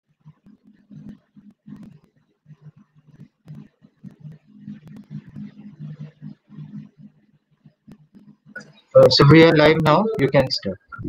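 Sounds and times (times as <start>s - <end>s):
faint garbled voice: 8.6s - 11.0s.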